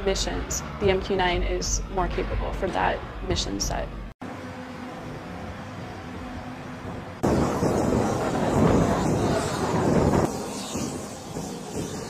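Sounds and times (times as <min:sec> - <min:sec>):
hangar hum: 0:00.0 - 0:12.0
outdoor flightline noise: 0:04.0 - 0:12.0.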